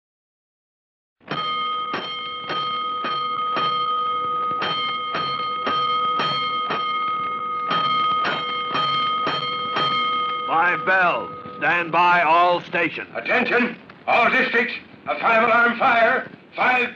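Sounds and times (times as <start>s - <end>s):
steady ringing tone: 1.2s - 16.5s
fire alarm bell strokes: 1.3s - 12.6s.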